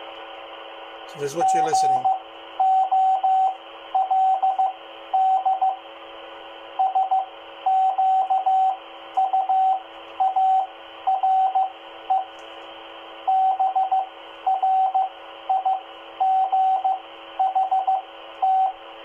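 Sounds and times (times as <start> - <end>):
radio hiss: 0.0 - 2.4
morse code tone: 1.2 - 5.8, 6.8 - 12.3, 13.3 - 18.8.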